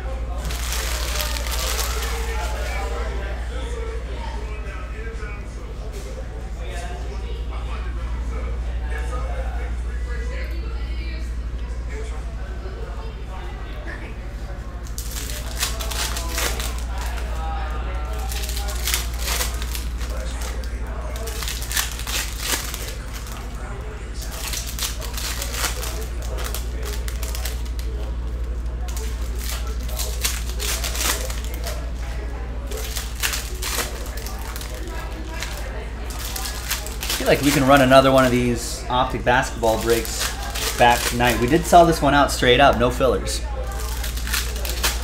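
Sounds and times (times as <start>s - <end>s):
plastic wrapper crinkling: 0.3s - 3.1s, 14.8s - 23.6s, 24.2s - 45.0s
cards being shuffled: 0.4s - 2.8s, 14.9s - 17.4s, 18.2s - 23.5s, 32.7s - 45.0s.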